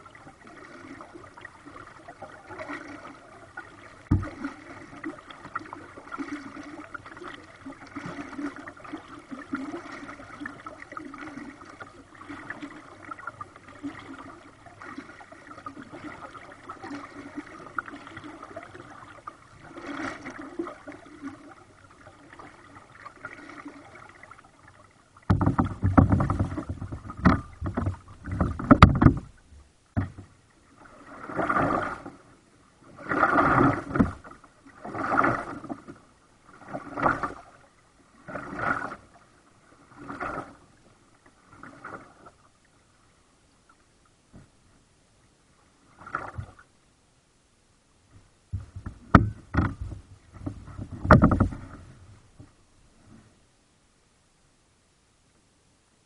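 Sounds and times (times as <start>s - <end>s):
paddle strokes splashing: 0.0s - 42.9s, 48.5s - 53.3s
faint water noise: 0.0s - 56.0s
rumbling and knocks: 25.3s - 29.4s, 48.5s - 51.8s.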